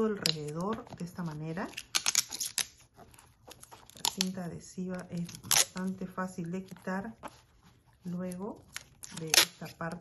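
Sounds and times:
adhesive tape unrolling crackle: 1.7s - 2.8s, 5.2s - 5.9s, 8.7s - 9.7s.

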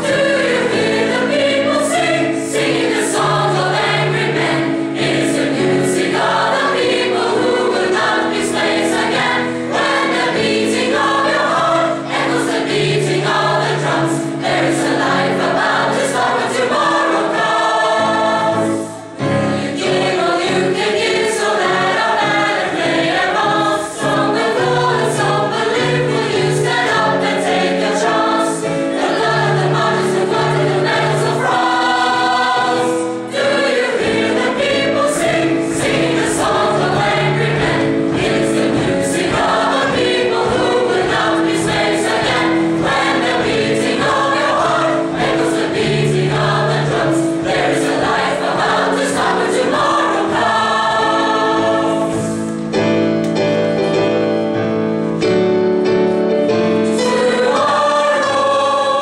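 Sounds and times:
choir singing: 0.0s - 54.5s, 55.2s - 59.0s.

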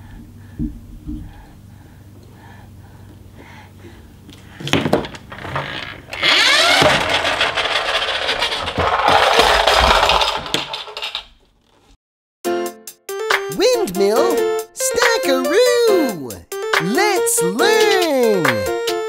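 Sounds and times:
wooden toy rings clattering: 5.2s - 11.4s
children's music jingle: 12.4s - 19.0s.

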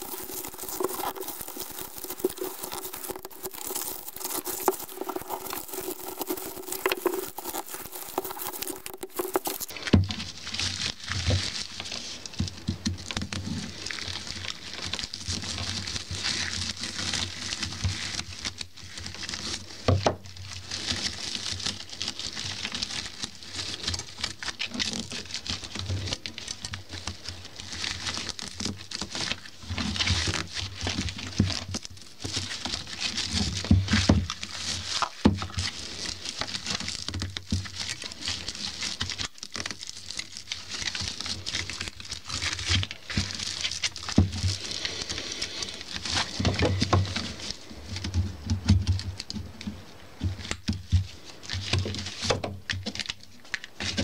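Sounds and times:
broom bristles rustling: 0.0s - 12.3s, 37.7s - 54.0s.

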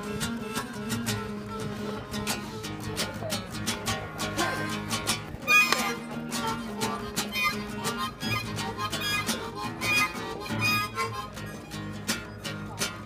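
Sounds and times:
harmonica melody: 0.0s - 12.9s
acoustic guitar strumming: 0.0s - 13.0s.

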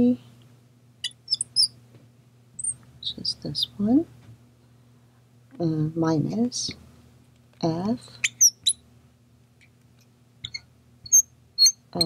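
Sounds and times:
marker squeaking on glass: 1.0s - 1.7s, 8.2s - 8.8s, 10.4s - 12.0s.

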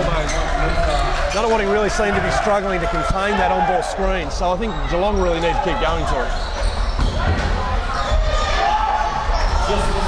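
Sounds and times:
voices in a large hall: 0.0s - 10.0s.

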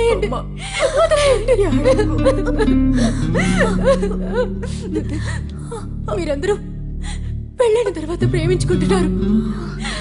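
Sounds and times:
low background music: 0.0s - 10.0s
woman crying in sobs: 0.5s - 6.1s.

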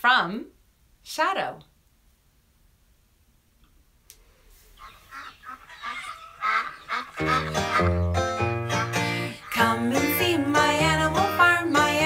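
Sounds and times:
farmyard fowl calling: 4.8s - 9.8s
acoustic guitar music: 7.2s - 12.0s.

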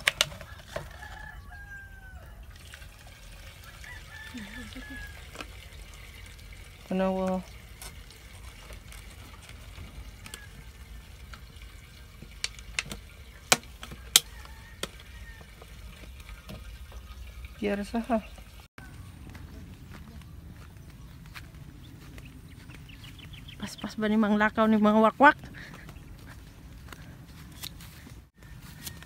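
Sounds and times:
liquid trickling into bottle: 2.4s - 18.7s.

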